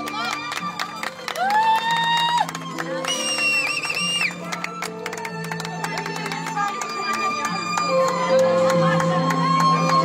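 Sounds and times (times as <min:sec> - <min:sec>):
festive music: 0:00.0 - 0:10.0.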